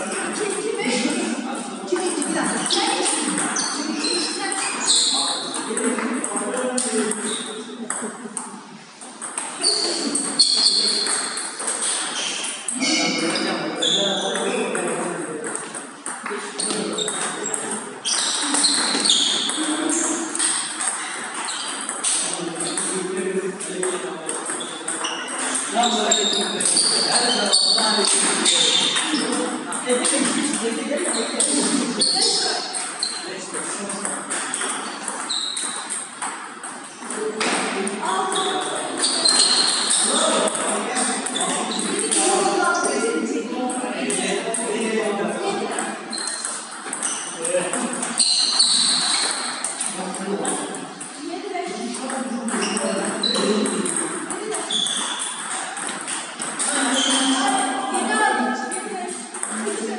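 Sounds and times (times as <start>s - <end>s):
people talking: 0.0s - 8.7s, 9.5s - 21.4s, 22.0s - 35.3s, 37.0s - 49.2s, 49.8s - 59.9s
table tennis ball clicking: 52.0s - 59.9s.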